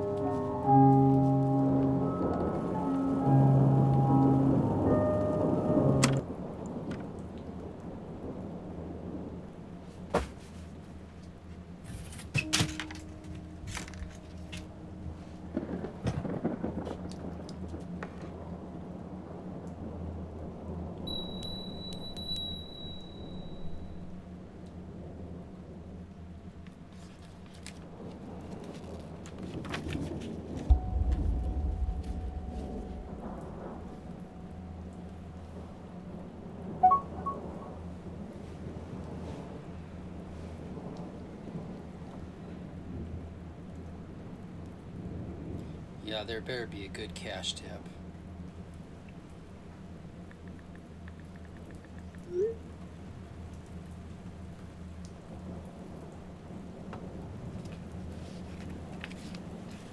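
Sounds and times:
low rumbling ambience: 0.0s - 9.8s, 10.9s - 26.9s, 30.7s - 40.9s
small knocks and rustles: 9.9s - 11.0s, 11.8s - 14.7s, 26.9s - 30.8s, 56.9s - 59.9s
sharp hit: 12.4s - 15.3s, 30.7s - 34.9s
thin high ringing tone: 12.4s - 15.4s, 21.1s - 24.2s, 30.8s - 35.8s, 36.8s - 37.8s
deep boom: 30.7s - 35.0s.

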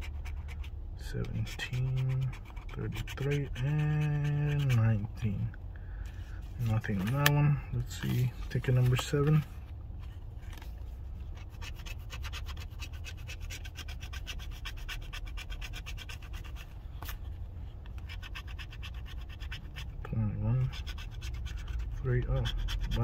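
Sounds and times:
coin scraping lottery ticket: 0.0s - 5.1s, 18.0s - 23.0s.

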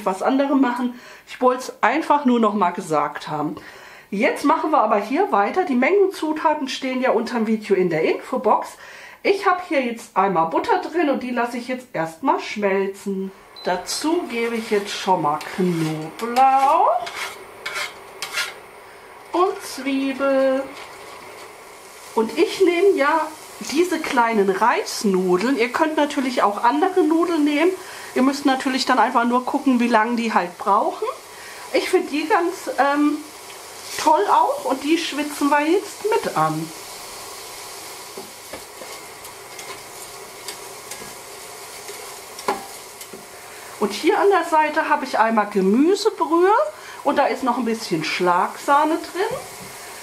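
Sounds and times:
food sizzling in butter: 9.4s - 50.0s
utensil scraping pot: 13.9s - 24.2s, 38.0s - 44.0s
knife scraping on wooden board: 14.5s - 18.6s.

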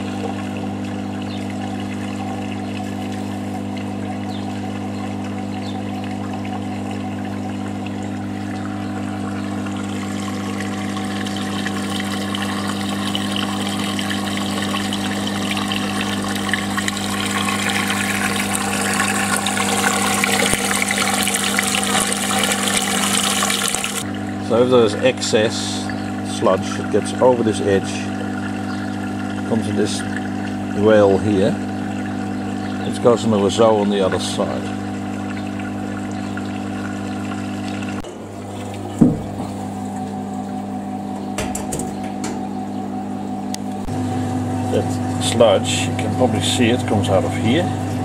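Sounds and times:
water running and splashing: 0.0s - 24.1s, 25.8s - 40.3s
pump motor humming: 0.0s - 48.0s.

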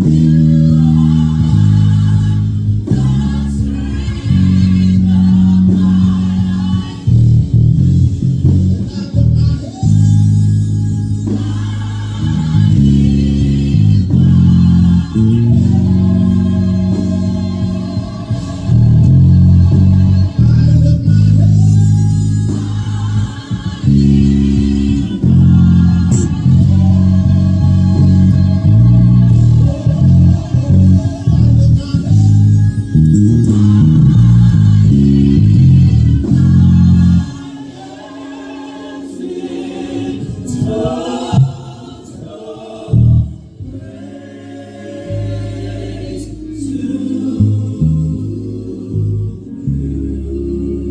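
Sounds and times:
electric bass guitar: 0.0s - 37.8s, 42.9s - 44.0s, 44.6s - 50.9s
band playing: 0.0s - 44.2s.

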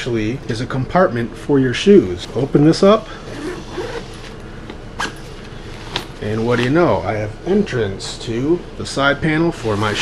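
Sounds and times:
zipper rasping open: 3.2s - 4.4s.

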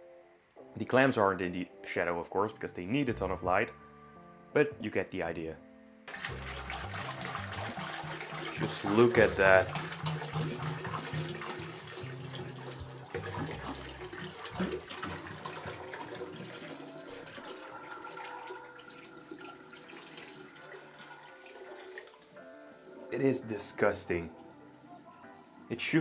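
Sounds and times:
water pouring into a sink: 6.1s - 26.0s.

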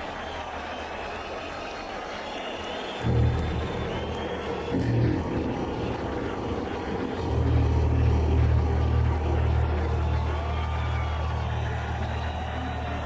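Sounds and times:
electric bass low droning notes: 6.9s - 10.9s.

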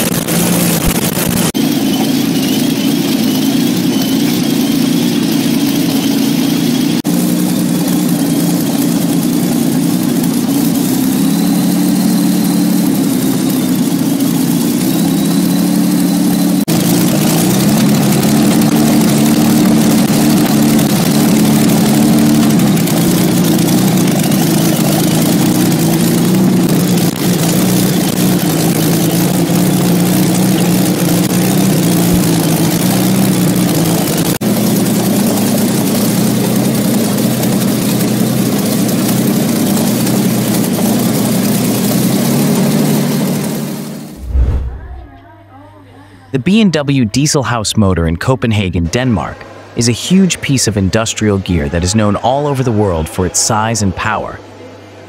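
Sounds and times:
aero engine running loudly: 0.0s - 45.1s, 48.7s - 54.8s.

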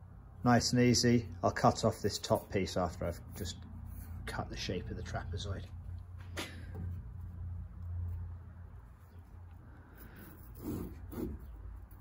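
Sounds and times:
low steady hum: 0.0s - 12.0s
hand saw strokes in wood: 10.5s - 11.4s.

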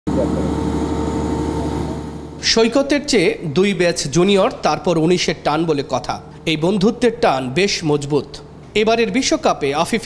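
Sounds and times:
steady mechanical drone: 0.1s - 10.0s.

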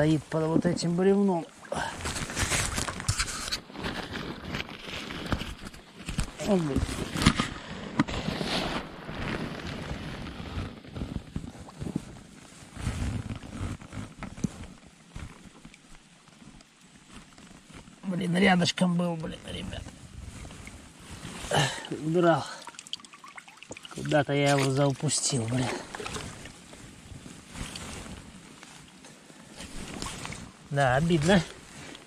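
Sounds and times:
stream water splashing: 0.0s - 3.4s, 20.4s - 32.0s.

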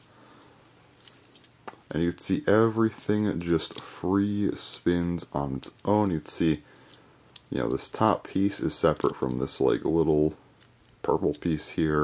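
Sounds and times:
man's voice: 1.9s - 6.6s, 7.5s - 10.4s, 11.0s - 12.0s.

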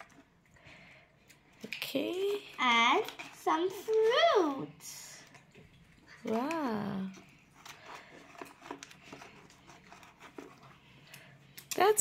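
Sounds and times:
paper rustling: 6.3s - 11.2s.

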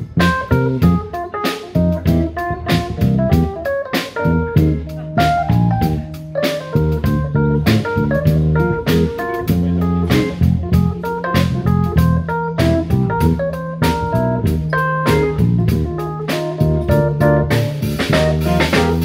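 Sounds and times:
bass line: 0.0s - 19.0s
drum kit beat: 0.0s - 19.0s
electric guitar: 0.0s - 19.0s
electric keyboard: 0.0s - 19.0s.

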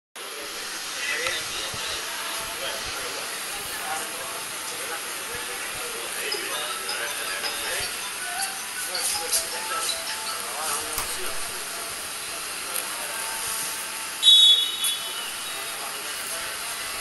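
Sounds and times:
faint distant voices: 0.2s - 17.0s.

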